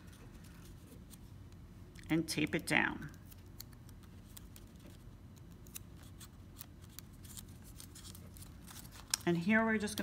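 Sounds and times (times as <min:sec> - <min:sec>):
low steady hum: 0:00.0 - 0:10.0
paper strips ticking and rustling: 0:03.1 - 0:10.0.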